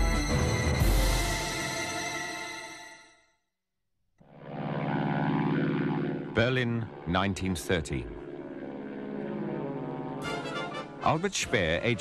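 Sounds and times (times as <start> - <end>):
propeller aircraft engine droning: 4.2 - 12.0.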